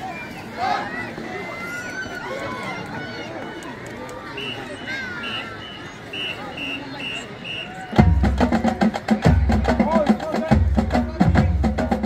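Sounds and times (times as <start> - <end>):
crowd babble: 0.0 - 12.0.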